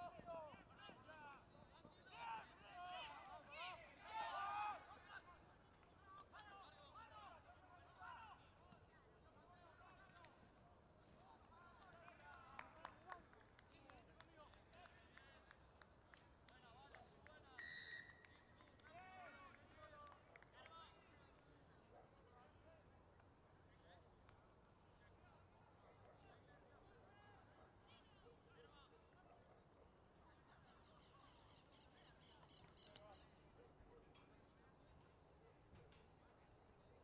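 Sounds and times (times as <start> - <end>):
referee whistle blast: 17.6 - 18.2.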